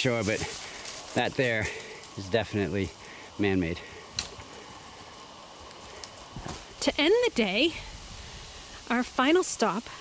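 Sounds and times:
footsteps on dry leaves: 0.0 - 8.9.

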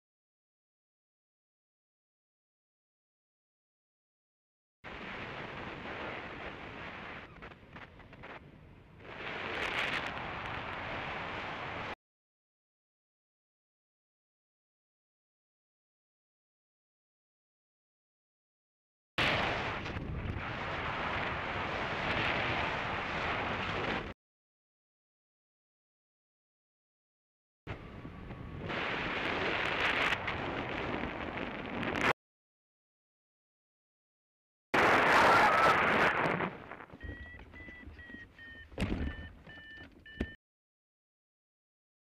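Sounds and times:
wind roaring over microphone: 4.9 - 12.0, 19.4 - 24.1, 27.7 - 32.1
thumps: 36.9 - 40.4
short electronic beeps: 37.0 - 40.4.

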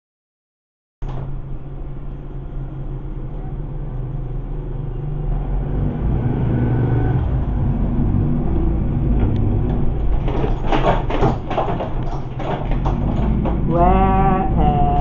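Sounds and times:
road noise: 1.0 - 15.0
vehicle engine running: 1.0 - 15.0.

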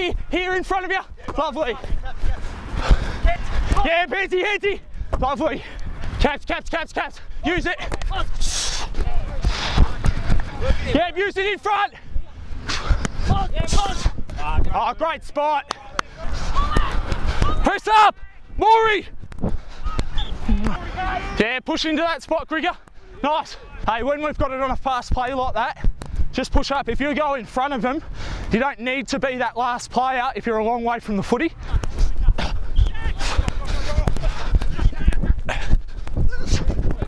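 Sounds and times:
person shouting and grunting: 36.2 - 36.7.

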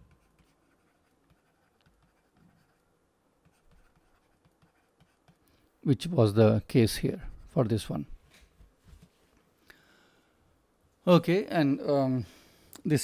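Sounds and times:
stylus scratching and tapping: 0.0 - 2.8, 3.4 - 5.5.

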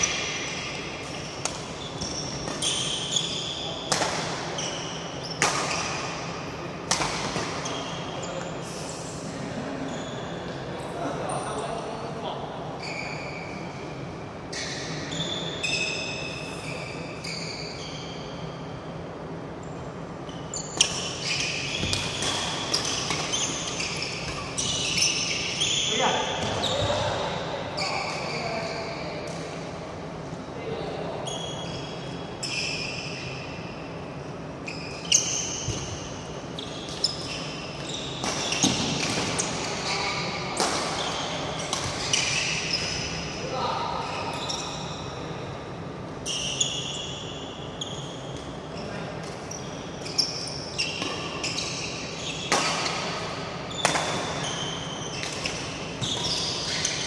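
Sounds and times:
shoes squeaking on floor: 0.0 - 3.9, 4.5 - 6.1, 9.7 - 11.4, 12.8 - 13.7, 14.5 - 18.5, 20.3 - 29.0, 34.6 - 40.3, 41.0 - 43.2, 44.0 - 45.2, 46.2 - 57.0
rackets hitting shuttlecock: 3.9 - 4.6, 5.4 - 6.2, 6.8 - 7.8, 20.8 - 25.0, 38.2 - 43.2, 52.4 - 53.2, 53.8 - 54.6.

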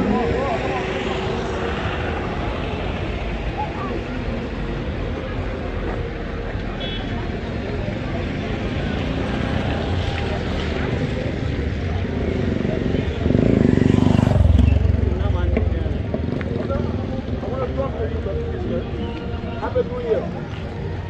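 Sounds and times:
people's voices: 0.0 - 21.0
traffic rumble: 0.0 - 21.0.

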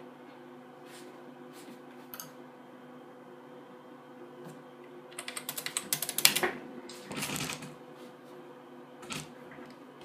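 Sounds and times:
fast typing on a keyboard: 5.2 - 6.4.

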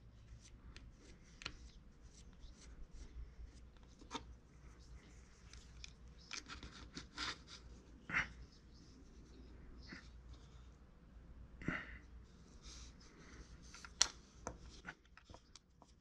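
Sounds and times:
wire tool scratching clay: 5.4 - 7.7.

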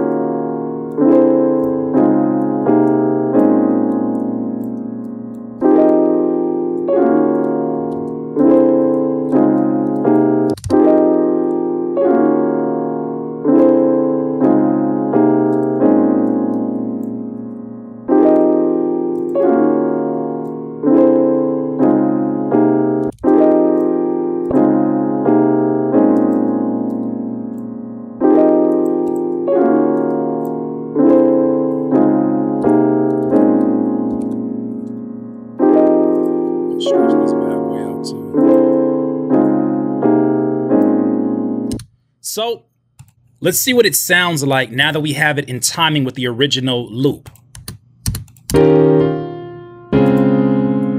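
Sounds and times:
piano block chords: 0.0 - 50.9.

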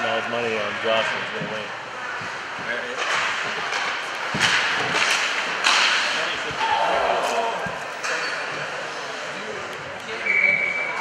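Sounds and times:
arena noise: 0.0 - 11.0
hockey hits on rink boards: 3.0 - 7.9.

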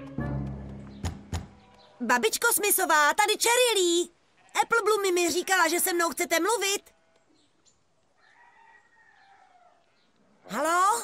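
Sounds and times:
faint rooster crow: 8.1 - 10.1.

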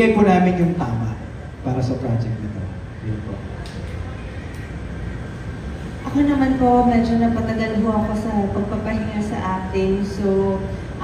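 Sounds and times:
room noise rumble and hiss: 0.0 - 11.0.

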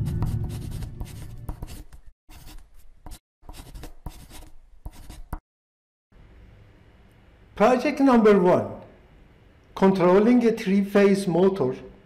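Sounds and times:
pen scratching on surface: 0.0 - 5.4.

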